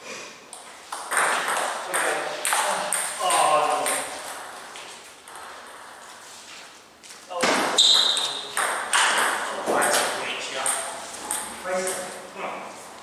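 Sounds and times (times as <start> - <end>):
person speaking: 1.8 - 4.3, 9.4 - 13.0.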